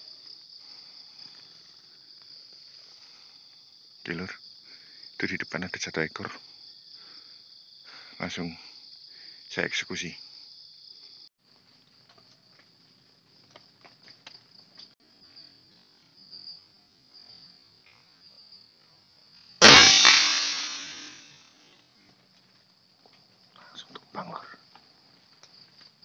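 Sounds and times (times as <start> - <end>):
high insect chirr: 0.0 - 21.8, 22.6 - 26.0
air rifle shot: 19.6 - 21.3.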